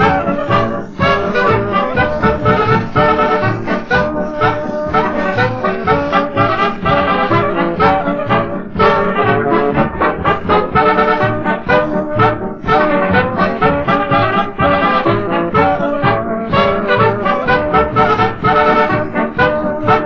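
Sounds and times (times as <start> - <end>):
brass polka on old record: 0.0 - 20.0.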